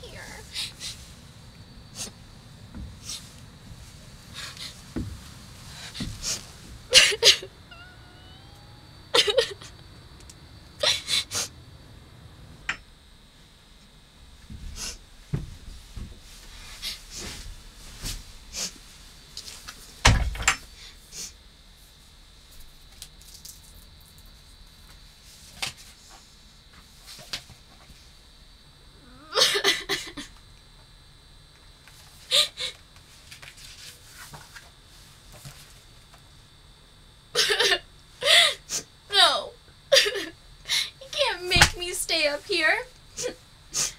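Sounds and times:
knocks inside wooden treehouse: 4.9 - 5.2
thumps on wood: 4.9 - 5.3, 6.0 - 6.4, 14.5 - 16.2
woman wailing cry: 6.9 - 9.7
woman sobbing: 6.9 - 9.8, 10.8 - 11.5, 29.0 - 30.3, 37.4 - 41.2.

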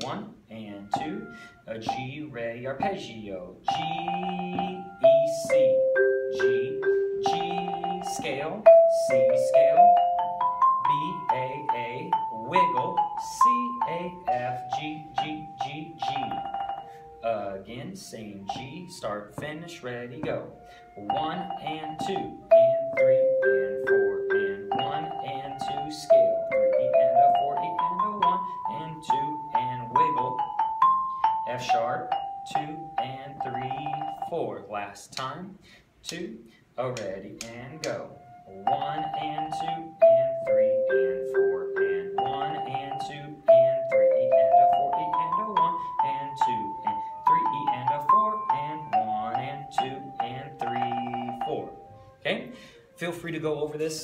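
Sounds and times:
man counting along: 0.0 - 10.0, 10.8 - 16.5, 17.2 - 30.6, 31.4 - 54.0
marimba melody: 0.0 - 35.2, 36.4 - 54.0.

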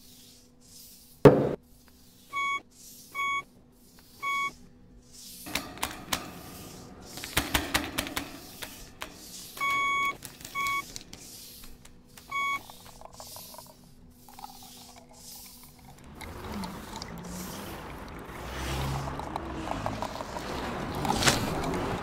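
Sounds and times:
electronic beeps: 2.4 - 2.6, 3.2 - 3.5, 4.2 - 4.6, 9.6 - 10.9, 12.3 - 12.8
crackling noise with clicks: 19.0 - 22.0.

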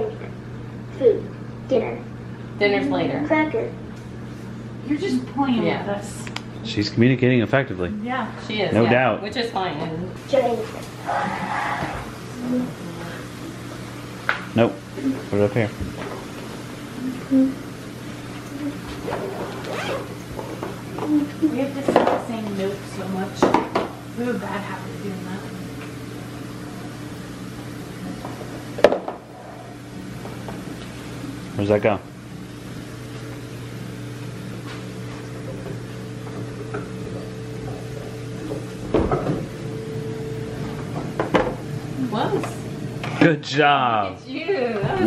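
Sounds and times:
low electrical hum: 0.0 - 45.0
zipper being pulled: 18.9 - 20.2.

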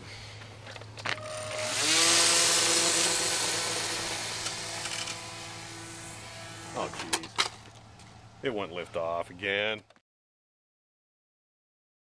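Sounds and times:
electric model plane motor whine: 1.1 - 7.4.

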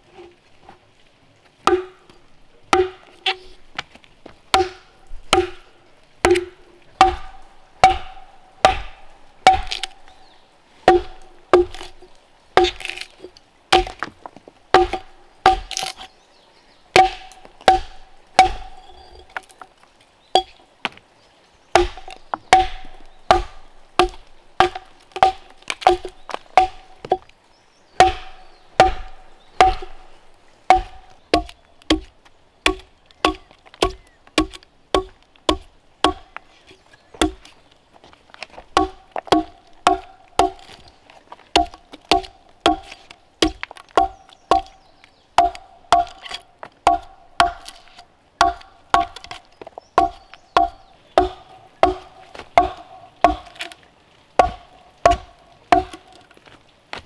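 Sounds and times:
axe chopping wood: 1.6 - 2.1, 2.7 - 3.4, 4.5 - 10.2, 10.9 - 12.0, 12.6 - 14.1, 14.7 - 16.0, 17.0 - 19.5, 21.8 - 27.3, 28.0 - 30.1, 30.7 - 32.1, 32.7 - 36.4, 37.2 - 37.5, 38.8 - 40.9, 41.5 - 44.8, 45.4 - 53.8, 54.4 - 56.2.

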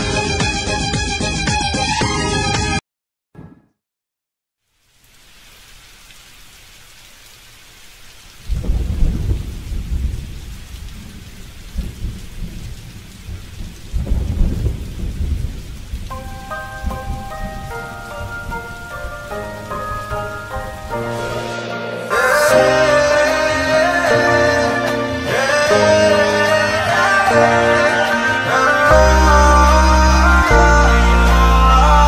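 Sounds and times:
steady rain: 4.6 - 32.0
thunder rolling: 8.4 - 23.8.

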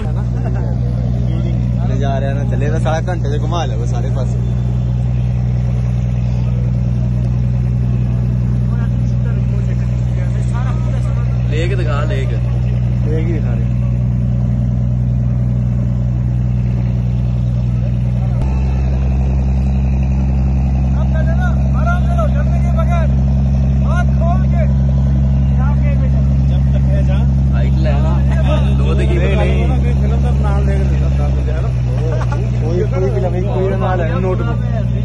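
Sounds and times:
motorboat engine droning: 0.0 - 35.0.

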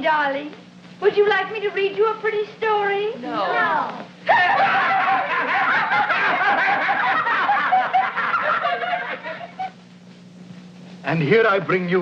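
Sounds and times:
steady low hum: 0.0 - 12.0
children laughing and giggling: 4.3 - 9.8.

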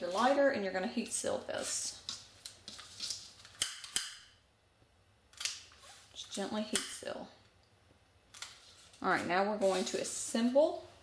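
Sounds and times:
soft handling sounds: 1.5 - 3.6.

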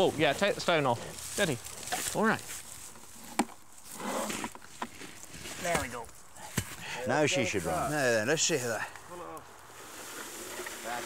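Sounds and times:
rustle of wheat: 0.0 - 3.2, 7.3 - 11.0.

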